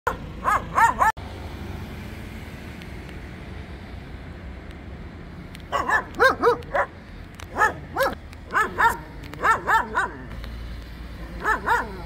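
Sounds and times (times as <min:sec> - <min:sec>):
dog barking: 0:00.1 - 0:01.1, 0:05.7 - 0:10.3, 0:11.4 - 0:12.0
street noise rumble: 0:00.1 - 0:12.0.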